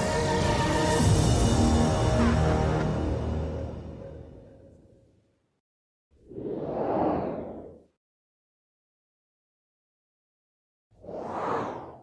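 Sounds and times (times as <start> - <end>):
whoosh sound effect: 6.2 - 7.8, 11.0 - 12.0.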